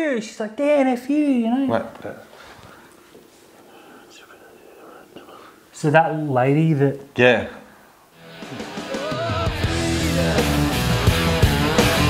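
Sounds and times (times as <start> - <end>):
man whispering: 3.6 - 6.5.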